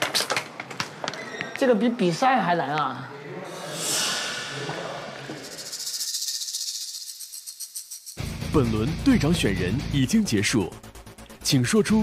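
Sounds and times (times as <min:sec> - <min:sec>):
fast-pulsing rattling hiss: 0:05.3 - 0:08.4.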